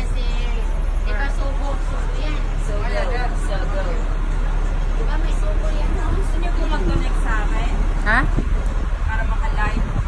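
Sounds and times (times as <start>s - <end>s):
tram rumbling: 0.0s - 10.0s
voices talking: 0.0s - 10.0s.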